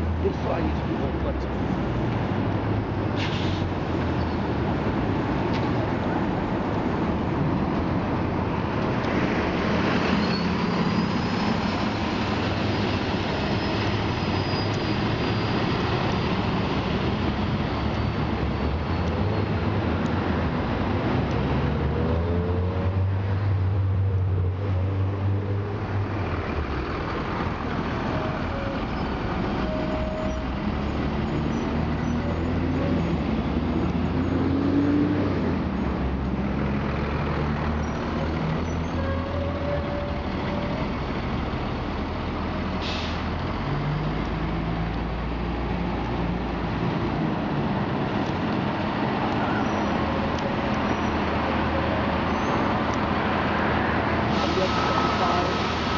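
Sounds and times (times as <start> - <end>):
bus engines humming: 0.0 - 55.9
air hiss: 54.2 - 55.9.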